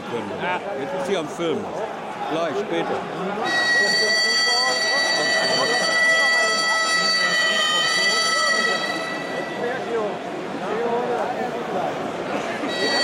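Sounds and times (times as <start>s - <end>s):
stadium crowd chatter: 0.0s - 13.0s
horn long steady note: 3.4s - 10.5s, 12.7s - 13.0s.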